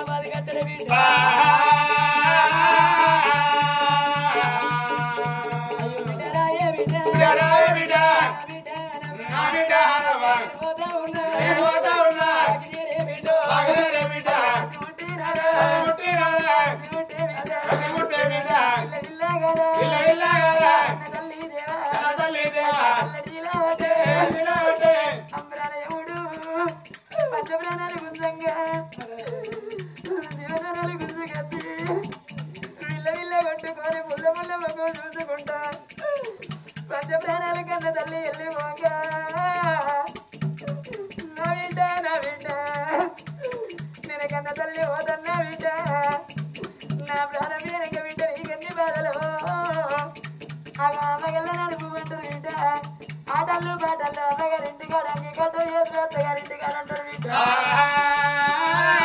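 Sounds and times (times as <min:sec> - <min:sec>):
person singing melodic phrases: 0:00.0 - 0:50.2, 0:50.8 - 0:59.0
steady rhythmic percussion: 0:00.0 - 0:59.0.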